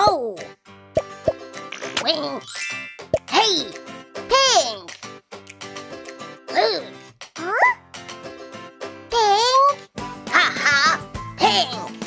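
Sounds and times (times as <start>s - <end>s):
children's background music: 0.0s - 12.0s
squeaky cartoon voice: 6.5s - 7.8s.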